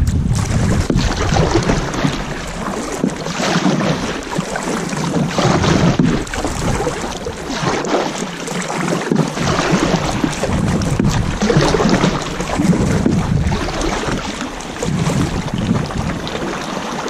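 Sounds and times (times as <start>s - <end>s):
paddle strokes splashing: 0.0s - 17.0s
water sloshing against hull: 0.0s - 17.0s.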